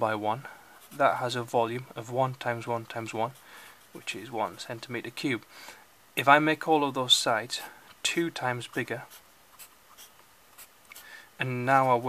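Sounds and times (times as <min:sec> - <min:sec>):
pencil scratching on paper: 0:08.6 - 0:10.7.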